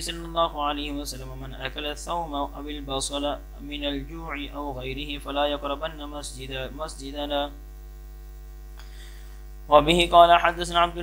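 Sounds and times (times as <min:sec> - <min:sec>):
man reading aloud: 0:00.0 - 0:07.6, 0:09.7 - 0:11.0
electrical mains hum: 0:00.0 - 0:11.0.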